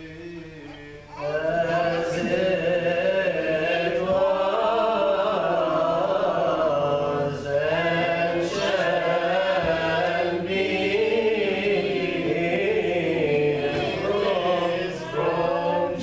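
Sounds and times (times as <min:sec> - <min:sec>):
voices chanting slow melody: 0:00.0 - 0:16.0.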